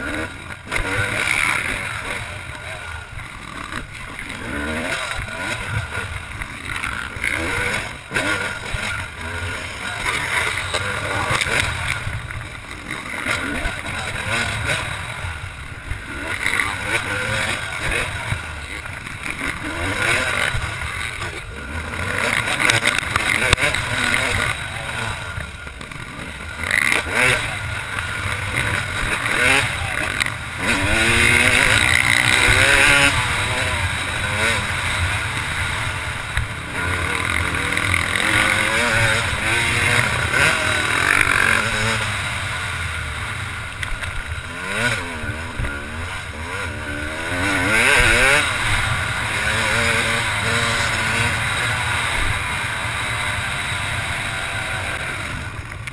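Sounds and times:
motocross bike engine revving: 0:00.0 - 0:55.9.

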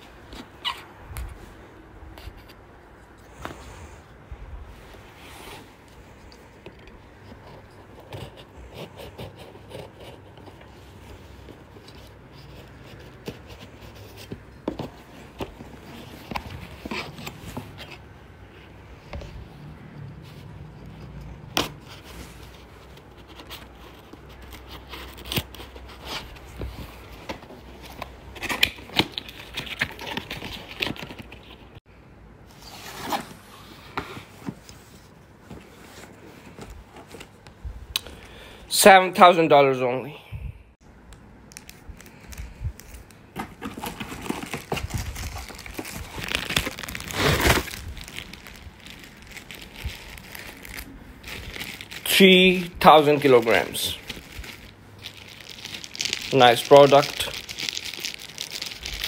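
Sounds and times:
plastic wrap crinkling: 0:41.5 - 0:59.0
cardboard box ripping: 0:43.4 - 0:50.8.

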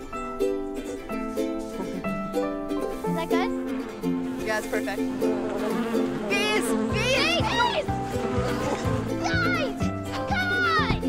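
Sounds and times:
light ukulele music: 0:00.0 - 0:11.0
bumblebee buzzing: 0:03.0 - 0:10.2.

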